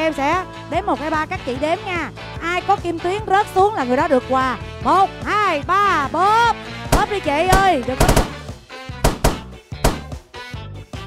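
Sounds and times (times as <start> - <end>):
background music: 0.0 - 11.0
balloons bursting: 6.9 - 10.2.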